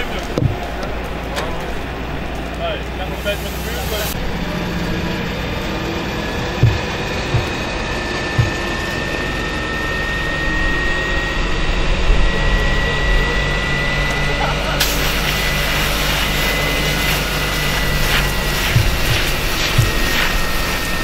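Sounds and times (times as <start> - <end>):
engine and water pump running: 0.0 - 21.0
hose spraying water: 2.4 - 4.2, 6.6 - 9.0, 14.7 - 21.0.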